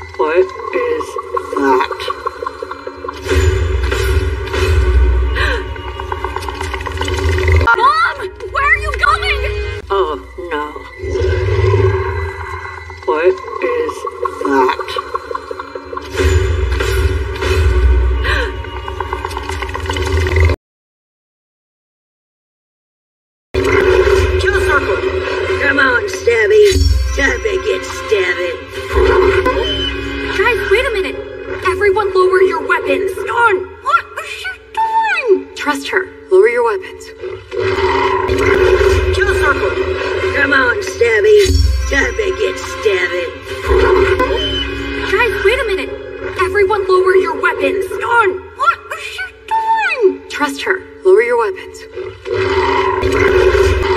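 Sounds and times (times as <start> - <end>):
orchestral film score: 0.0 - 20.6, 23.6 - 53.9.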